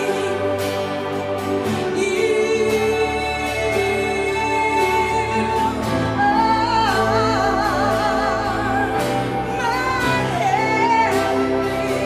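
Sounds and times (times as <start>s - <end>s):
instrumental accompaniment: 0.0s - 12.0s
person singing with vibrato: 0.0s - 12.0s.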